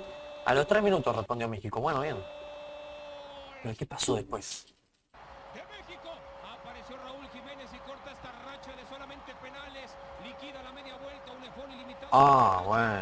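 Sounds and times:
stadium background noise: 0:04.6 - 0:13.0.

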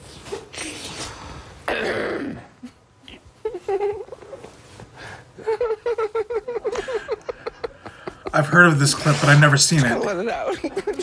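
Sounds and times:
high-pitched giggles: 0:02.6 - 0:04.8
man's stifled laughter: 0:02.7 - 0:04.8, 0:05.4 - 0:08.4.

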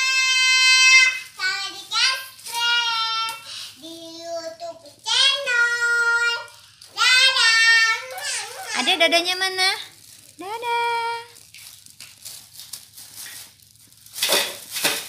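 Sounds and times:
child singing high notes: 0:00.0 - 0:08.9.

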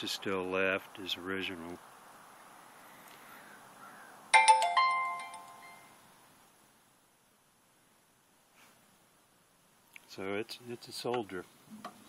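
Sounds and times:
faint background hiss: 0:00.0 - 0:12.0
bright bell-like chime: 0:04.4 - 0:05.9.

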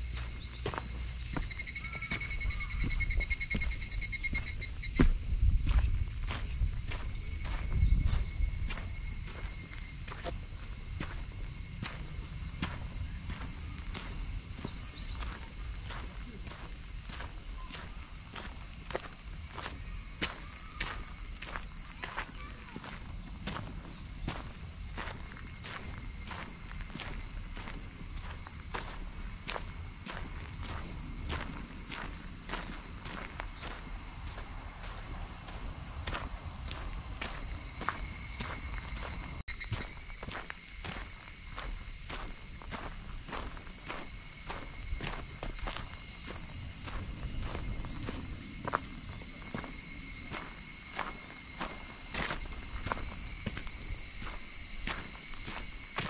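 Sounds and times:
footsteps on dirt and leaves: 0:00.0 - 0:56.0
insects chorus: 0:00.0 - 0:56.0.

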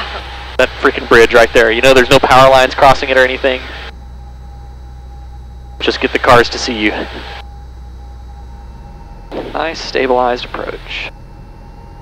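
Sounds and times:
muffled propeller plane engine drone: 0:00.0 - 0:12.0
thin steady whine: 0:00.0 - 0:12.0.

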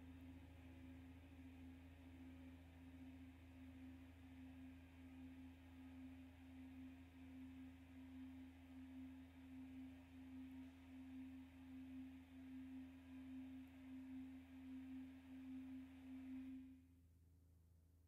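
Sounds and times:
faint wavering drone: 0:00.0 - 0:16.8
low steady hum: 0:00.0 - 0:17.8.

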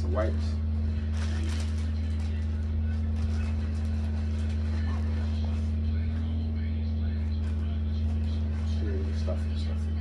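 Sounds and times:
steady low hum: 0:00.0 - 0:10.0
plastic packaging rustling: 0:00.9 - 0:06.1.

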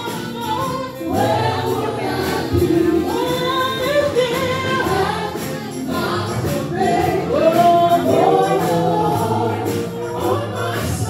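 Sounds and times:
vocal group singing in harmony: 0:00.0 - 0:11.0.

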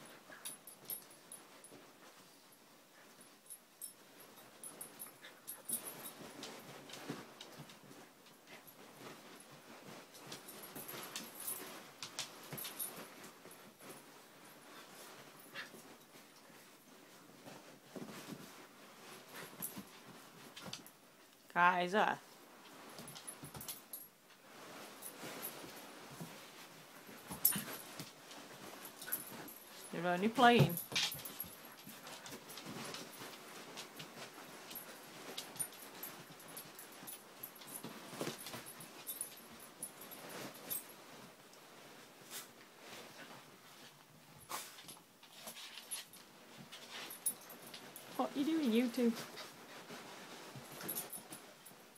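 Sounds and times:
puppies scuffling: 0:00.0 - 0:21.0, 0:22.3 - 0:51.9.

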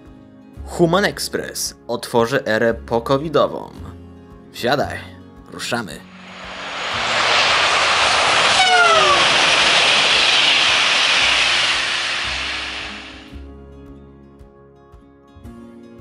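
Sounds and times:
soft background music: 0:00.0 - 0:06.1
train rushing past: 0:06.0 - 0:13.4
train horn blast: 0:06.1 - 0:13.3.

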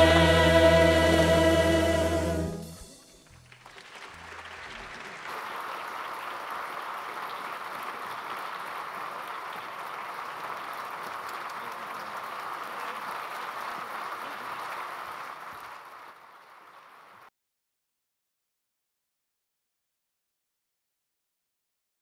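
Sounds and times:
audience applauding: 0:00.0 - 0:17.3.

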